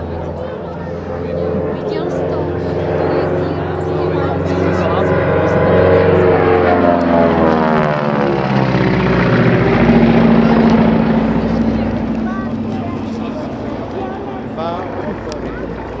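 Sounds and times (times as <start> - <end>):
propeller plane droning overhead: 0.0 - 16.0.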